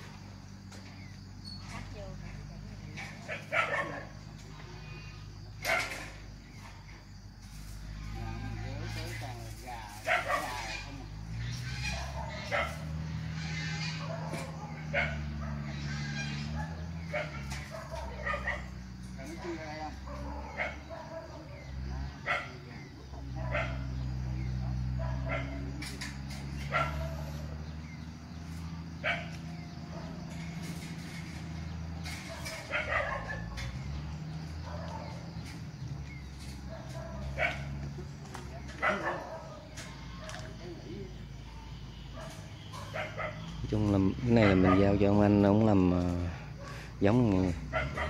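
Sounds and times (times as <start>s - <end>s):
animal barks or grunts: 23.3s - 27.7s, 38.7s - 43.5s, 44.4s - 45.2s, 46.3s - 48.0s.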